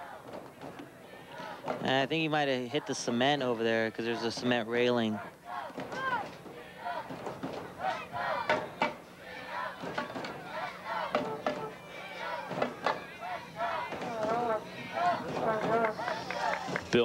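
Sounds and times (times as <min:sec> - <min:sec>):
crowd shouting and calling out: 0:00.0 - 0:17.0.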